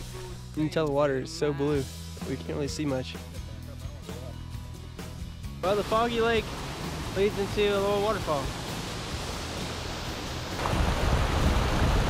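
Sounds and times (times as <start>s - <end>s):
water rushing over rock: 5.6s - 12.0s.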